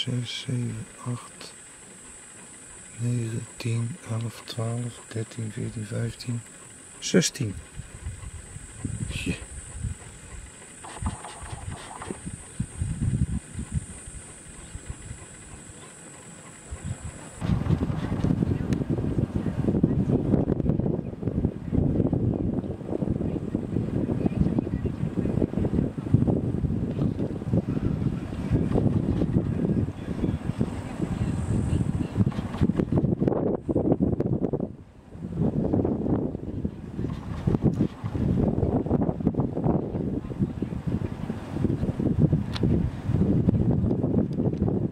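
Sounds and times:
high-pitched drone: 0.0s - 17.4s
wind buffeting microphone: 0.0s - 44.9s.

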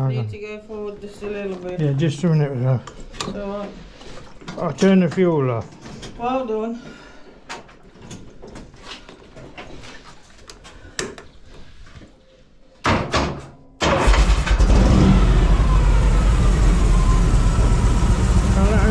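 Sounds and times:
motorcycle engine cranking: 13.8s - 15.0s
motorcycle engine running: 14.6s - 18.9s.

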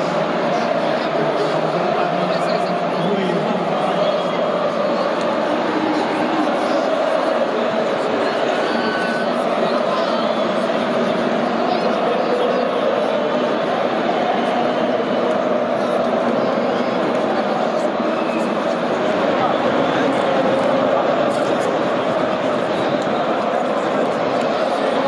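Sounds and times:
stadium crowd singing and chanting: 0.0s - 25.0s.

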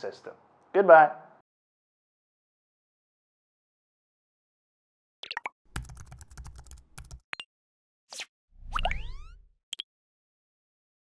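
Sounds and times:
brief swish: 8.1s - 8.9s.

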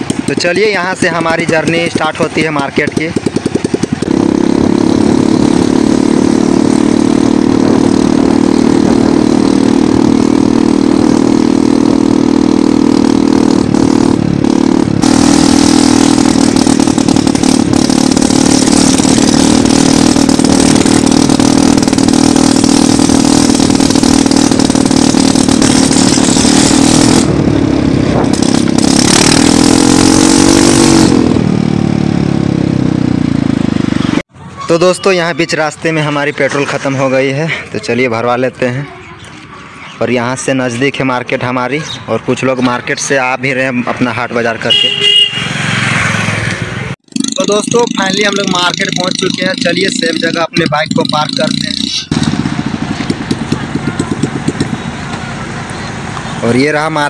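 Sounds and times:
motor scooter engine running: 0.0s - 34.7s, 47.0s - 57.0s.

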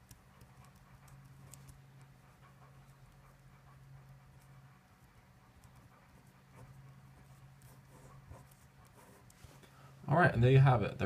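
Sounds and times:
pen scratching on paper: 0.0s - 9.6s
low steady hum: 0.0s - 11.0s.

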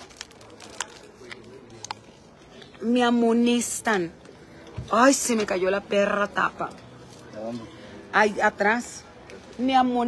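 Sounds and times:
plastic bottle crackling: 0.0s - 2.0s
faint background murmur: 0.0s - 10.0s.

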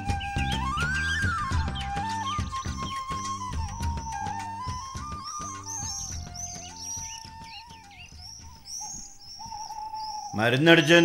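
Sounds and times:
bird chirping: 0.0s - 11.0s
soft film music: 0.0s - 11.0s.

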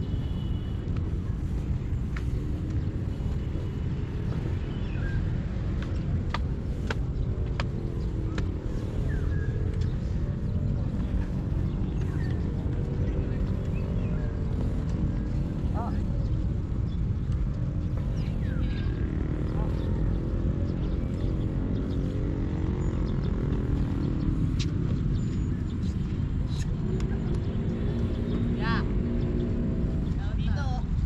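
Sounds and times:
distant traffic rumble: 0.0s - 31.0s.

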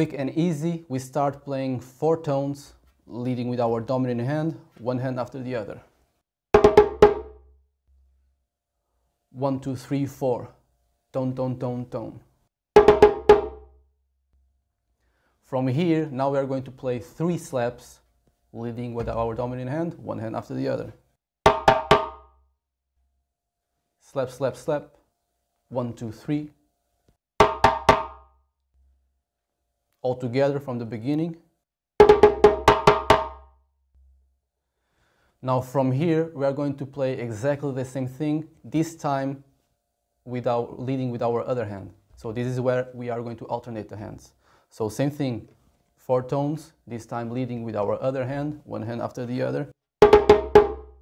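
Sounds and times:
djembe tone stroke: 6.6s - 7.5s, 12.8s - 13.7s, 21.5s - 22.3s, 27.4s - 28.3s, 32.0s - 34.2s, 50.0s - 51.0s.

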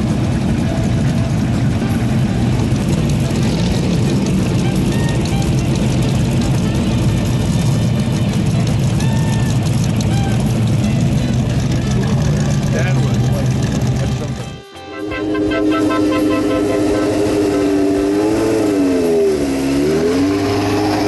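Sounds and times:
car engines rumbling: 0.0s - 21.0s.

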